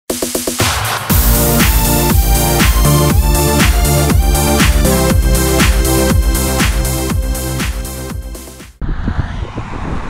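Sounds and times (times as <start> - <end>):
electronic dance music: 0.1 - 8.8
wind rumble on microphone: 8.8 - 10.0.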